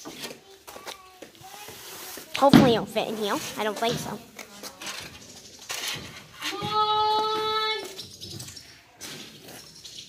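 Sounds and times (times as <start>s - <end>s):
broom scraping on concrete: 1.4s - 6.6s.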